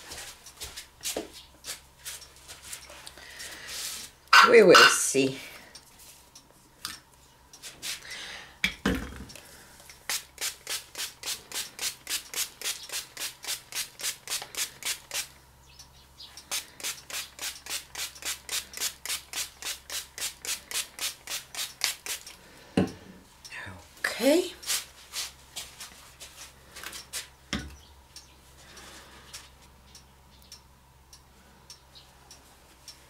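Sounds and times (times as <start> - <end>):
spray bottle squirting water: 10.0 - 15.3, 16.5 - 22.4.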